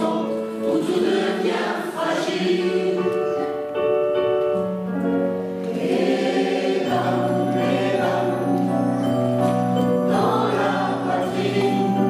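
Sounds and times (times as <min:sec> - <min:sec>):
choir singing sustained chords: 0:00.0 - 0:03.5, 0:05.6 - 0:12.0.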